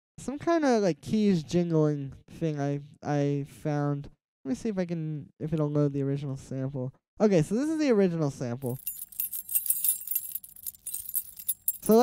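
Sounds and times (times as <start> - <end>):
keys jingling: 8.6 - 12.0.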